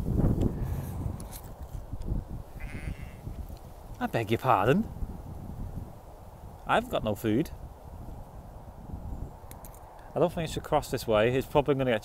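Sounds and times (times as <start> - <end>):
sheep bleating: 2.6 - 3.3.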